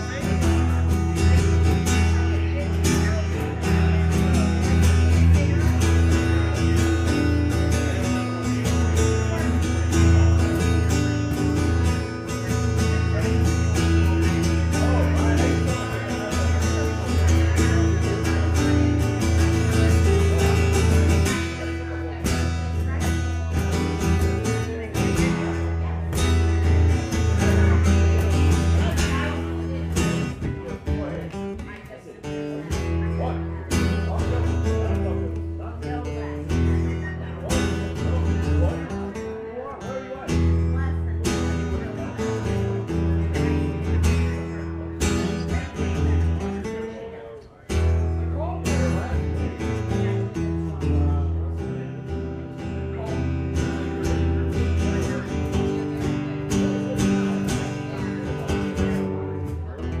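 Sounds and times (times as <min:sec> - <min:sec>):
acoustic guitar strummed and picked: 0:00.0 - 1:00.0.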